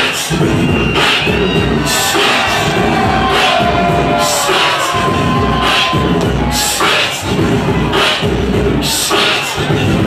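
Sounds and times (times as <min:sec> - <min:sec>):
hip-hop beat: 0:00.0 - 0:10.0
crowd cheering: 0:00.1 - 0:09.8.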